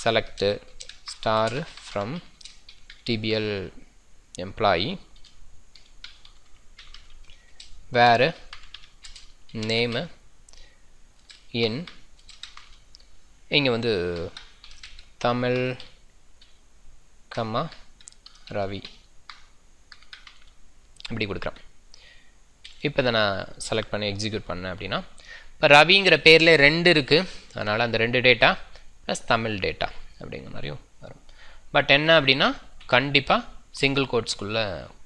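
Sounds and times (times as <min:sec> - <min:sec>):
keyboard typing: 0:00.3 - 0:03.2, 0:05.2 - 0:10.1, 0:11.2 - 0:13.0, 0:13.9 - 0:16.6, 0:17.7 - 0:20.6.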